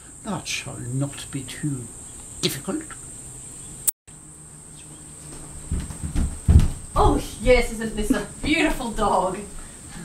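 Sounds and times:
high-pitched insect buzz: 1.3s - 5.3s
low thumps: 5.7s - 7.8s.

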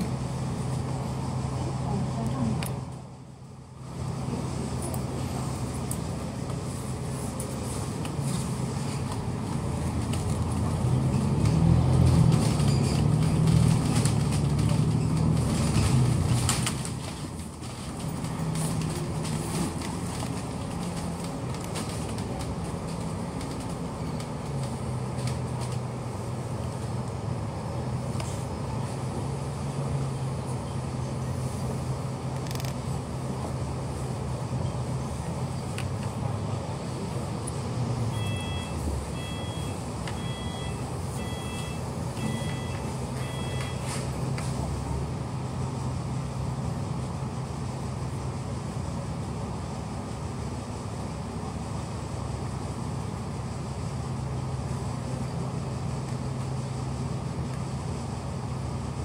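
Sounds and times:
bus engine running: 0.0s - 59.0s
electronic beep: 38.2s - 43.8s.

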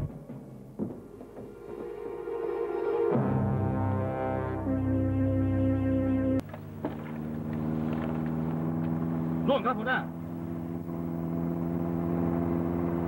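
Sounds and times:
small boat engine droning: 1.4s - 13.0s
man speaking: 9.4s - 10.2s.

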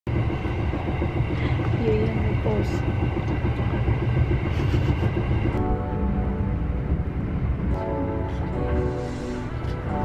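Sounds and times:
train rumble inside carriage: 0.1s - 10.0s.

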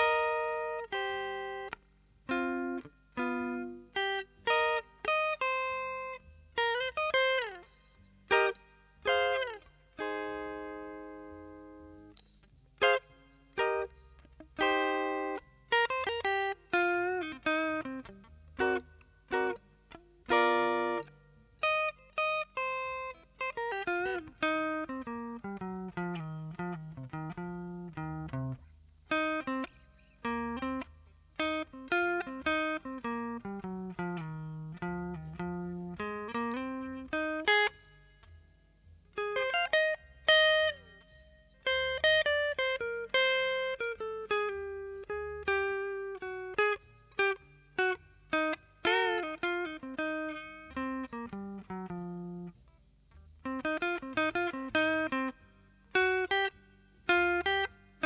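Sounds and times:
slow guitar melody: 0.0s - 58.0s.

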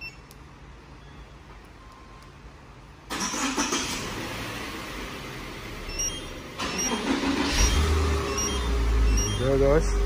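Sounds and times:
short electronic beeps: 5.9s - 9.9s.

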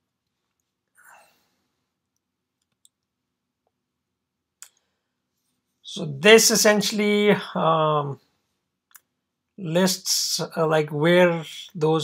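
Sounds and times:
soft breath: 1.0s - 2.0s.

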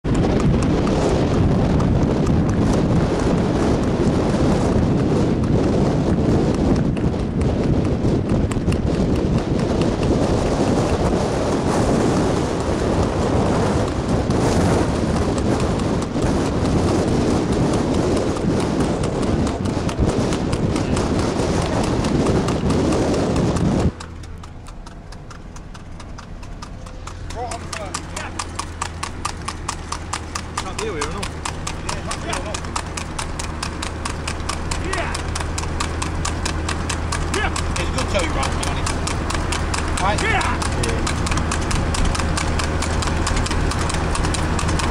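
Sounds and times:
hoofbeats on tarmac: 0.0s - 44.9s
hooves striking asphalt: 0.0s - 44.9s
low car engine hum: 0.0s - 44.9s
low rumble: 0.0s - 44.9s
wind and road rush: 0.0s - 44.9s.

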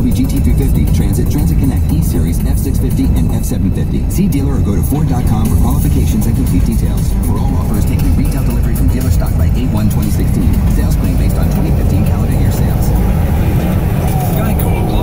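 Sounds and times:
road and engine rumble: 0.0s - 15.0s.

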